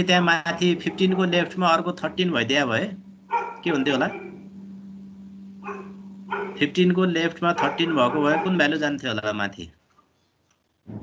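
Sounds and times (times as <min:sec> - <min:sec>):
steady low hum: 0:00.0 - 0:09.3
faint background noise: 0:00.0 - 0:11.0.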